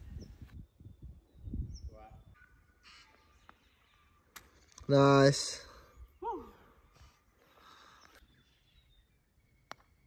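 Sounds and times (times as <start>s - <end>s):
wind rumble on microphone: 0.0s - 2.4s
faint bird calls: 1.7s - 4.7s.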